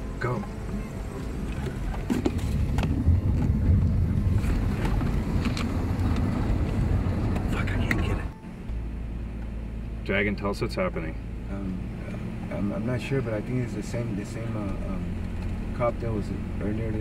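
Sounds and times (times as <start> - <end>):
car engine and road rumble: 0.0 - 17.0
steady low hum: 0.0 - 17.0.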